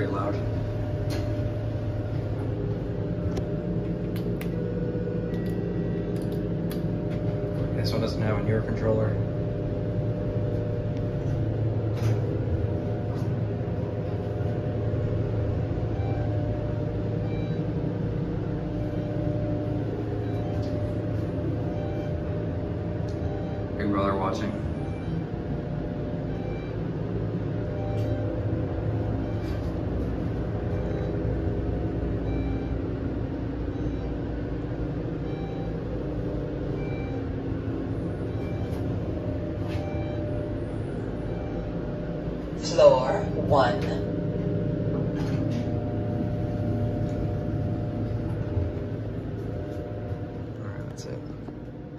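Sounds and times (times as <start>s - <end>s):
elevator car rumbling: 0.0s - 51.9s.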